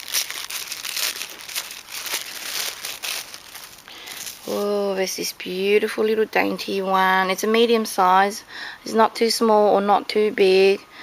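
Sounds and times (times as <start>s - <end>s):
wrapping crinkling and rustling: 0.0s - 5.0s.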